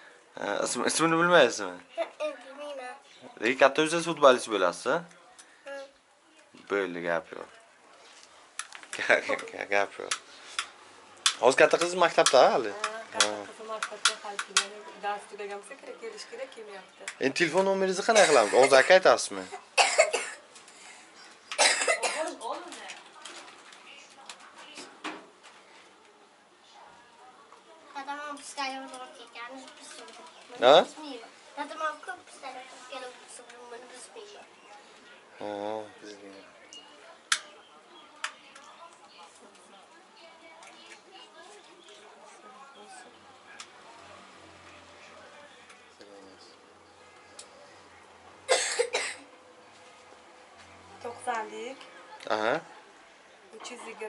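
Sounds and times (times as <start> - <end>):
person coughing: 18.2 - 18.9, 19.8 - 20.4, 21.6 - 22.3, 48.5 - 49.2.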